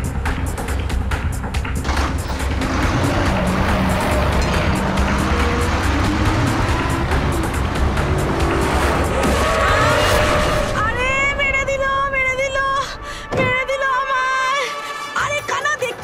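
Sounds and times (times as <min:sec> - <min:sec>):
bus engine running: 0:00.0 - 0:10.8
dramatic background music: 0:00.0 - 0:16.0.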